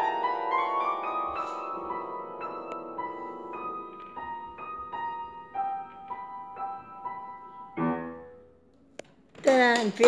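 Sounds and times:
piano chord ringing: 0.0s - 8.6s.

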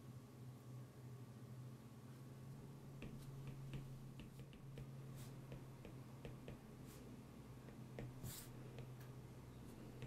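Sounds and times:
steady low hum: 0.0s - 10.0s
stylus tapping tablet screen: 2.9s - 7.0s, 7.6s - 10.0s.

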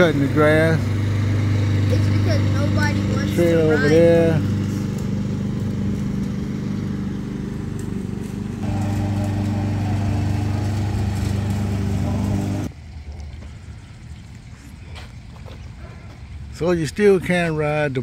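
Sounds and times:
lawn mower engine cutting grass: 0.0s - 12.7s.

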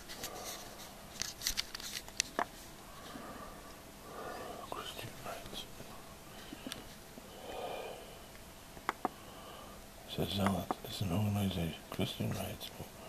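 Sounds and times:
man's faint voice: 4.5s - 5.8s, 10.1s - 13.0s.

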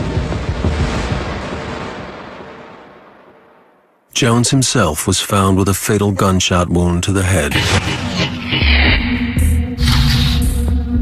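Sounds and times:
low rumble: 7.4s - 10.4s.

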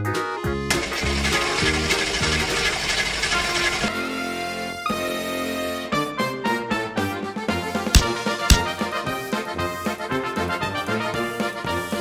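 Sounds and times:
background music: 0.0s - 12.0s
car engine cranking: 0.7s - 3.9s.

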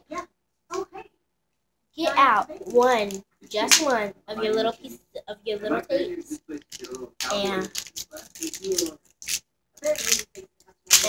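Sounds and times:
girl mumbling: 5.6s - 6.4s
tape crinkling: 6.6s - 11.0s.

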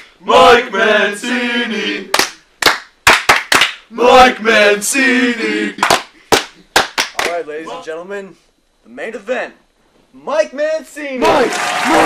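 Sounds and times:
people clapping hands: 2.1s - 3.8s, 5.8s - 7.4s, 11.3s - 12.0s.

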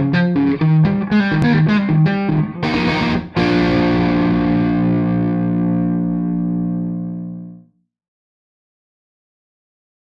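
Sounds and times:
distorted electric guitar: 0.0s - 7.7s.

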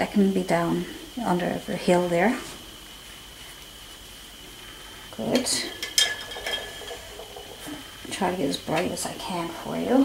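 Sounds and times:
tools clinking on a table: 5.7s - 7.7s.

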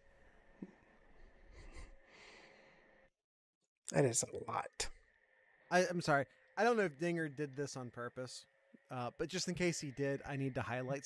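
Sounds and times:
breathy nasal exhales: 1.5s - 3.1s.

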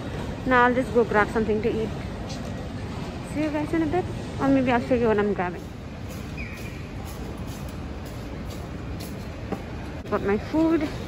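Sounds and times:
low rumble of terminal noise: 0.0s - 11.0s.

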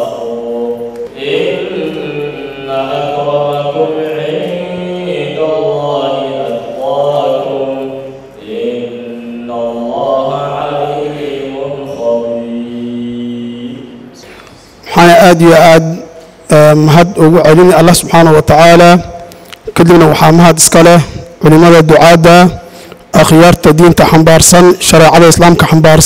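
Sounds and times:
man chanting: 0.0s - 14.2s, 14.8s - 26.0s.

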